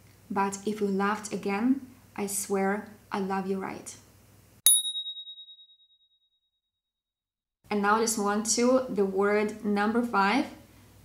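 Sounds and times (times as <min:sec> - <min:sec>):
bright bell ding: 0:04.7 - 0:05.8.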